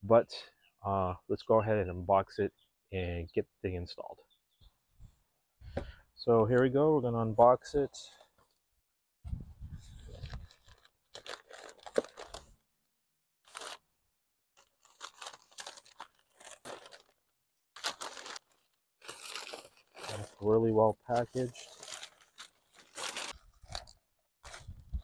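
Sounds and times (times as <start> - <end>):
packing paper rustling and crinkling: 9.7 - 12.6, 13.4 - 13.8, 14.6 - 25.0.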